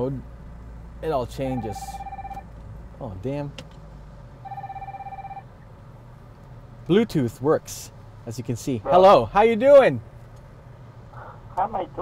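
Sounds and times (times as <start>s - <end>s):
electronic ringtone: 1.6s - 2.4s, 4.5s - 5.4s.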